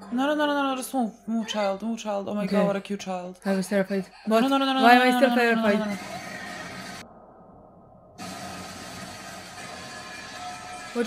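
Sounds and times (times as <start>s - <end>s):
steady hissing noise: 8.2s - 10.9s.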